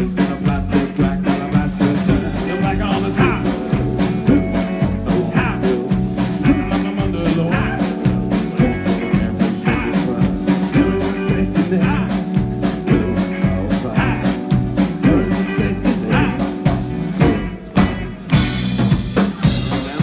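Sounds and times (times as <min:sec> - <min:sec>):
bass guitar: 0:00.0 - 0:20.0
drum kit beat: 0:00.0 - 0:20.0
electric guitar: 0:00.0 - 0:20.0.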